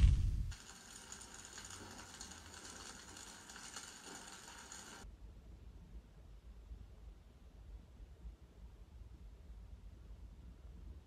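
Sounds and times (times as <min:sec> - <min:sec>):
faint crackling: 0:00.0 - 0:05.0.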